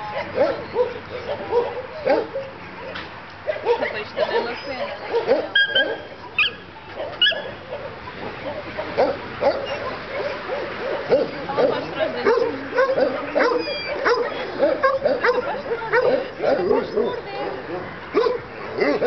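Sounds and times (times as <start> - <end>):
dogs barking and yipping: 0.0 - 19.0.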